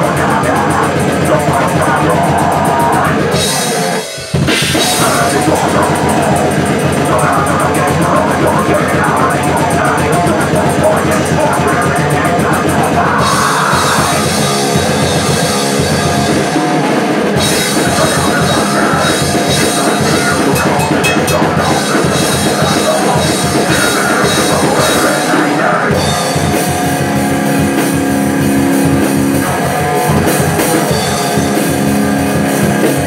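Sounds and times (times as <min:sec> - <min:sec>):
fast blast-beat drumming: 0:00.0 - 0:33.0.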